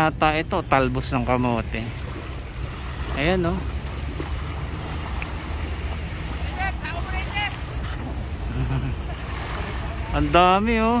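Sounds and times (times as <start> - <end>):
shallow water washing: 0.0 - 11.0.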